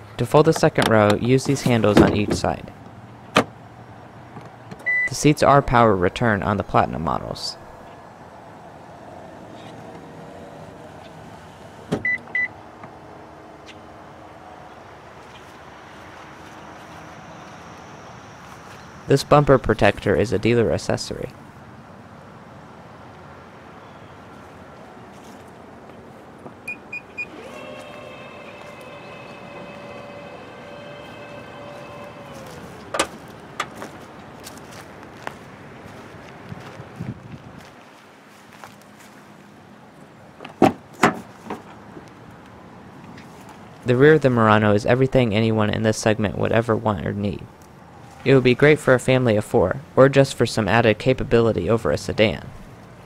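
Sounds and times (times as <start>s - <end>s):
liftgate latching clunk: 1.6s - 2.6s, 3.3s - 3.6s, 32.9s - 33.8s, 40.4s - 41.7s
short warning beeps: 4.9s - 5.2s
seat motor whining: 26.6s - 33.9s.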